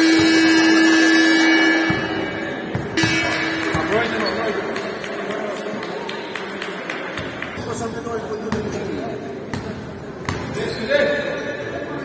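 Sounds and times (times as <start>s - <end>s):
game buzzer tone: 0.0s - 4.4s.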